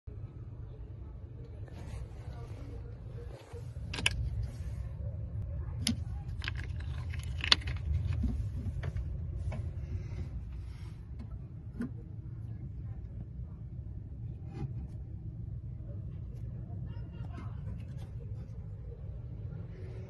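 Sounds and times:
steady low rumble: 0.1 - 20.0
plastic covers and cables clicking: 3.8 - 4.5, 5.8 - 9.0.

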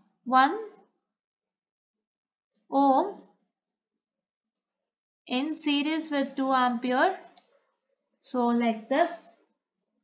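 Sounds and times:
person speaking: 5.3 - 7.3.

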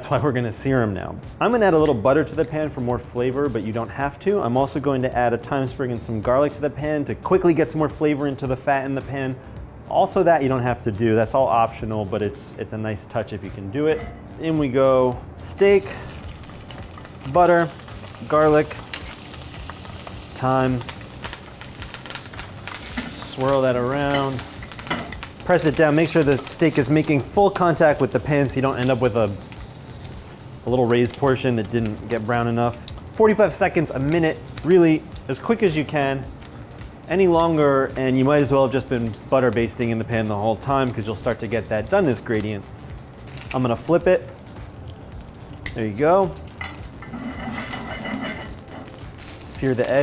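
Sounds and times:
steak sizzling in a skillet: 15.4 - 50.0.

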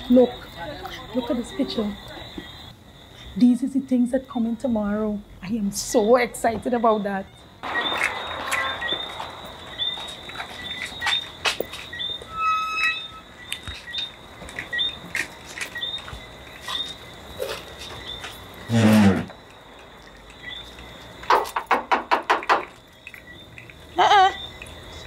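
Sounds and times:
short loud sound: 7.6 - 11.1
footsteps on tiled floor: 10.0 - 12.3, 13.4 - 18.7.

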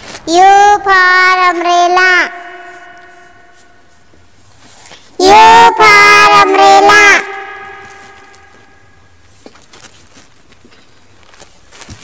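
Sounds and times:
person singing: 0.3 - 3.6, 5.2 - 8.4.

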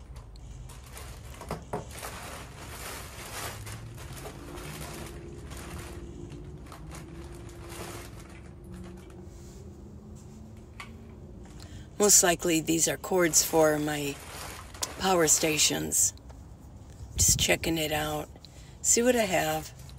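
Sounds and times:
plastic bag rustling: 0.0 - 10.6, 11.2 - 18.3.

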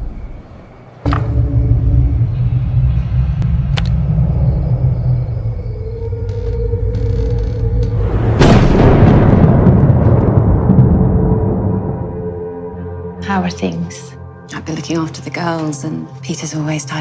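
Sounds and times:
deep rumbling drone: 0.0 - 14.5.

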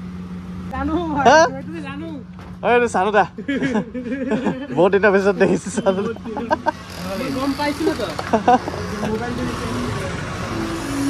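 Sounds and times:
men talking: 0.7 - 10.6.

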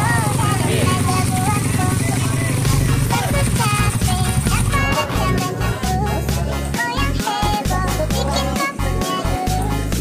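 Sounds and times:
motorcycle engines running: 0.0 - 10.0
music with singing voice: 0.0 - 10.0.

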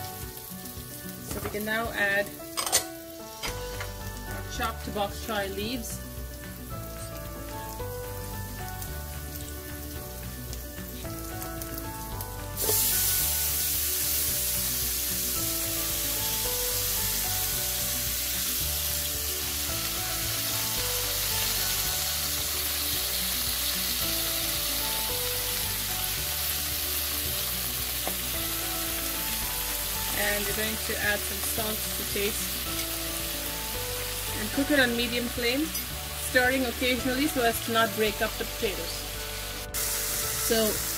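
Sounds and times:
background music: 0.0 - 40.9
hot oil sizzling in a frying pan: 0.0 - 40.9.

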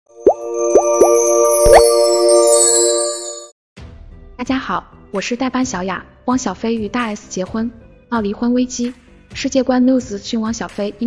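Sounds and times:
held synth chord: 0.1 - 3.5
high twinkling tones: 0.1 - 3.5
bubbly pops sweeping upward: 0.2 - 1.9.

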